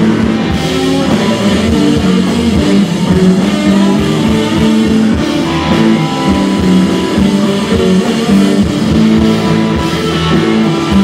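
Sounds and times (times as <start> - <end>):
electric guitars sustained notes: 0.0 - 11.0
steady drum beat: 0.0 - 11.0.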